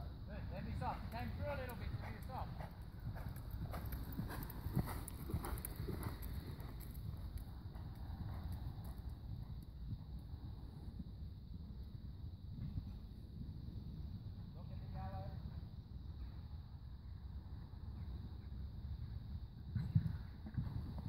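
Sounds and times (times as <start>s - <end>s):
horse hooves cantering on sand: 0.4s - 16.5s, 17.8s - 21.0s.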